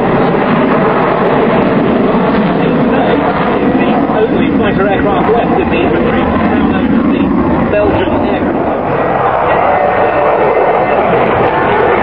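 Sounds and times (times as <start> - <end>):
jet engine overhead: 0.0 - 12.0.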